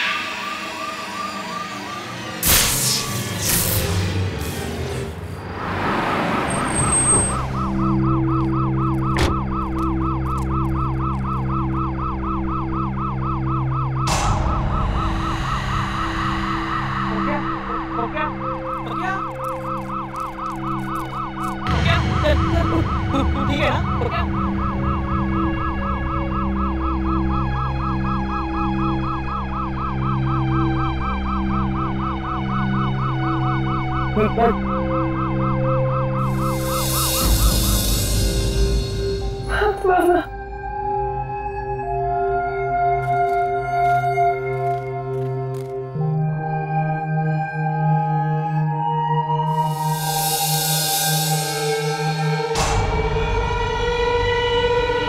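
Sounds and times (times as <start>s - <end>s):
steady low drone: 6.3s - 55.0s
police siren warbling: 6.4s - 39.4s.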